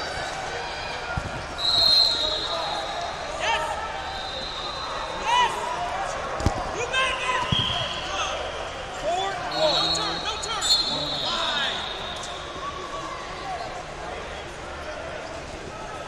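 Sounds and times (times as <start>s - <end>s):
people shouting: 9.3s - 13.2s.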